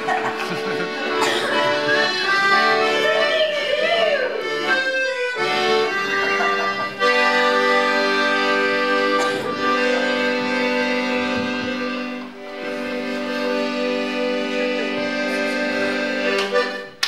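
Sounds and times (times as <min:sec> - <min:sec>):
piano accordion chords: 0:00.0 - 0:17.0.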